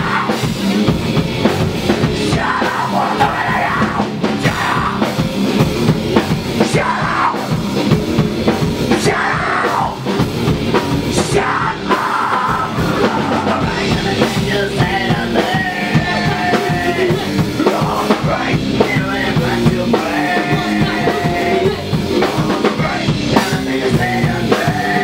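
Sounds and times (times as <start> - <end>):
electric guitars: 0.0 - 25.0
loud drum kit: 0.0 - 25.0
rock band playing live: 0.0 - 25.0.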